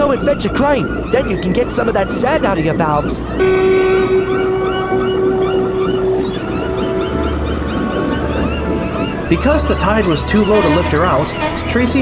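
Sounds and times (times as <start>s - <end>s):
gulls calling: 0.0s - 12.0s
low hum: 3.3s - 9.3s
tugboat whistle: 3.4s - 12.0s.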